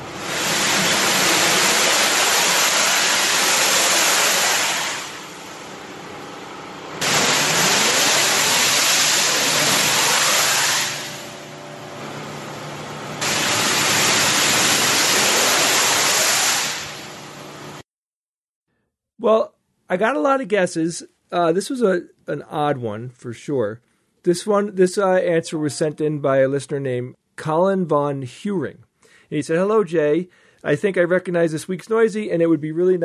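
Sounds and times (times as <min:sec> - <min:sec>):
loud rushing noise: 0:07.0 - 0:17.5.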